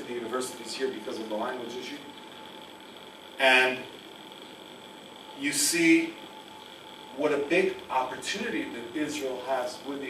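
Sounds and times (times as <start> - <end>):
man speaking into a microphone: 0.0 - 2.1, 5.4 - 6.2, 7.2 - 10.0
faint steady hum: 0.0 - 10.0.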